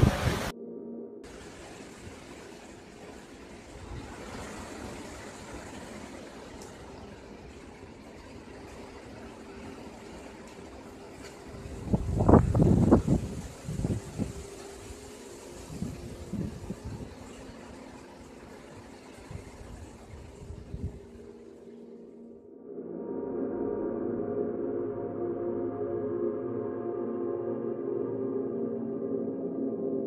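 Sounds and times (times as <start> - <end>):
wind gust buffeting microphone: 0.0 - 0.5, 11.4 - 17.6, 19.2 - 21.3
wind rushing through trees: 0.0 - 0.5, 1.3 - 21.9.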